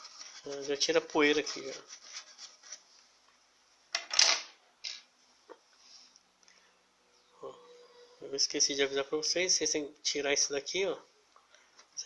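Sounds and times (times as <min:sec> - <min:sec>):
brush rubbing and scraping: 0:00.0 - 0:03.0.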